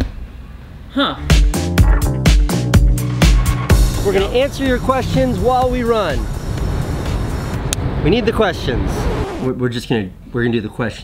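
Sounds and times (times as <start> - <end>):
wind: 0.0 - 1.3, 3.9 - 11.0
traffic rumble: 2.9 - 10.4.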